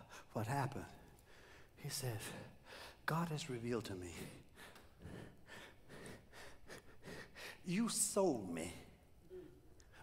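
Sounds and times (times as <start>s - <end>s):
man breathing faintly: 4.2s - 7.7s.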